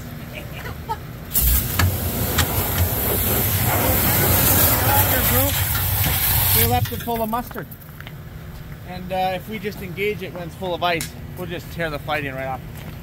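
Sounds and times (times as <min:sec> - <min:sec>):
pressure washer spraying water: 0:01.3 - 0:07.2.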